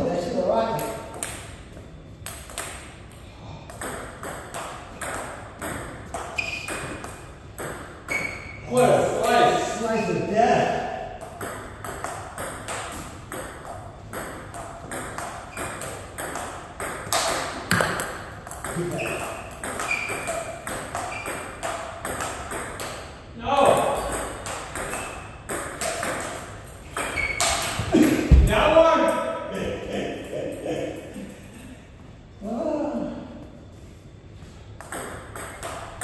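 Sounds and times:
voices in a room: 8.6 - 11.2, 27.8 - 34.0
ping-pong ball clicking: 23.8 - 27.8, 34.8 - 36.0.

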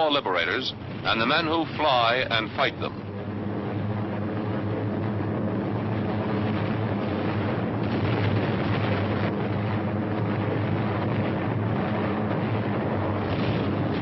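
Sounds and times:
piston aircraft engines droning: 0.0 - 14.0.

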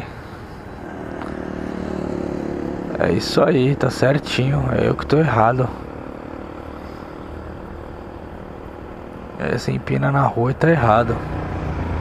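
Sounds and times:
motorcycle engine at low revs: 0.3 - 9.4, 10.6 - 12.0.

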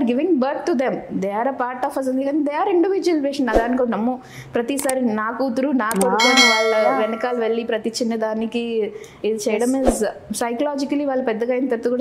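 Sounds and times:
woman talking: 4.8 - 8.5, 9.3 - 12.0
bell-like ringing tone: 6.1 - 7.6.

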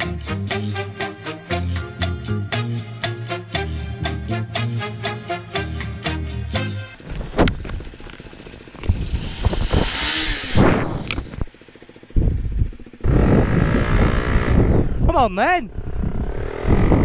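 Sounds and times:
background music: 0.0 - 7.0
motorcycle engine revving: 3.5 - 17.0
wind noise on microphone: 7.0 - 8.0, 8.8 - 11.5, 12.2 - 17.0.

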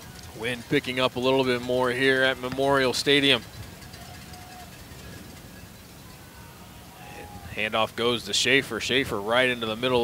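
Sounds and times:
faint stadium ambience: 0.0 - 10.0.

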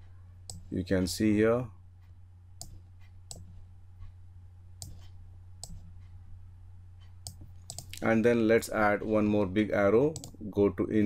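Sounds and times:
low steady hum: 0.0 - 11.0
computer mouse clicking: 2.0 - 4.1, 4.8 - 6.2, 7.0 - 8.1, 10.1 - 10.4.

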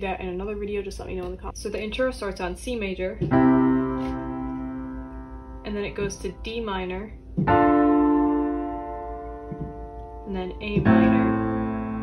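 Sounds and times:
piano minor chord: 3.2 - 12.0.

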